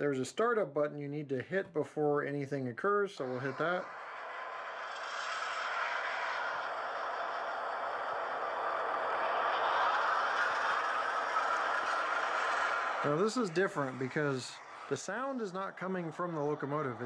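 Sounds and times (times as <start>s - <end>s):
diesel locomotive engine through small speaker: 3.2s - 17.0s.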